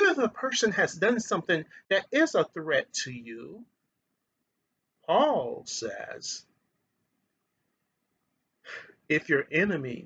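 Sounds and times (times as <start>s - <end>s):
man breathing in: 8.6s - 9.0s.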